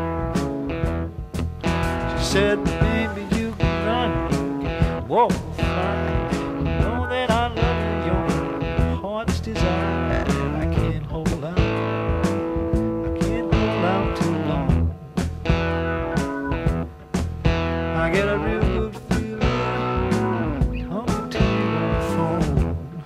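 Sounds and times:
bass line: 0.0s - 23.0s
overdriven blues guitar solo: 0.0s - 23.0s
steady beat: 0.0s - 23.0s.

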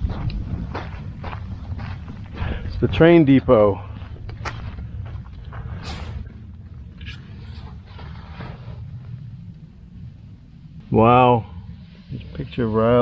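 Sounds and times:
footsteps crunching on gravel: 0.0s - 6.5s
wind rumbling on microphone: 0.0s - 13.0s.

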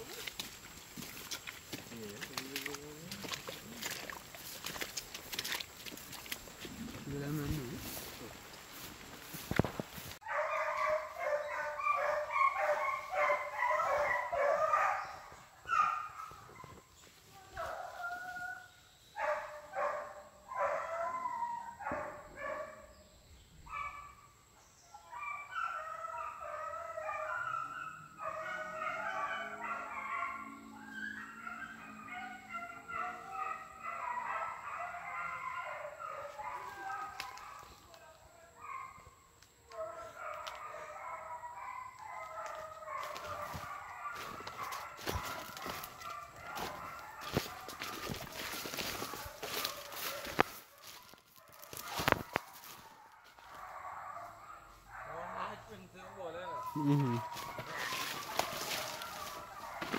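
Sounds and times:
dogs barking and yelping: 8.8s - 22.9s, 23.6s - 59.9s.

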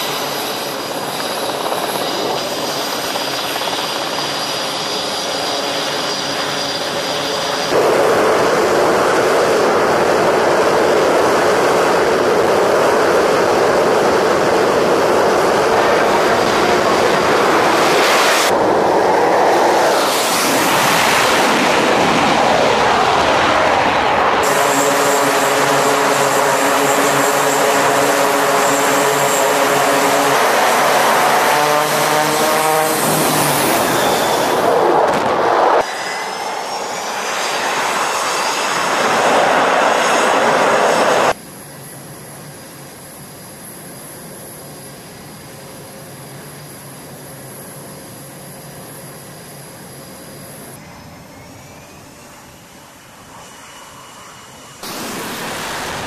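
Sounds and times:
high-pitched turbine whine: 0.0s - 56.0s
jet engine noise with whines: 0.0s - 56.0s
turboprop engines droning: 0.0s - 56.0s.

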